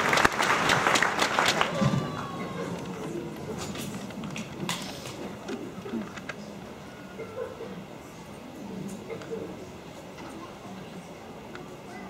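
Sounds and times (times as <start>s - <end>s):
faint low murmur: 1.2s - 12.0s.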